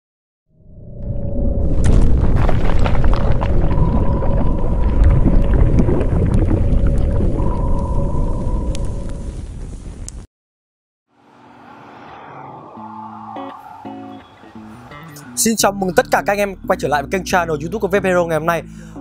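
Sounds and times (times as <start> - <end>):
deep rumble with crackles: 0.8 - 10.3
held tone: 3.6 - 9.3
quiet music: 14.8 - 18.6.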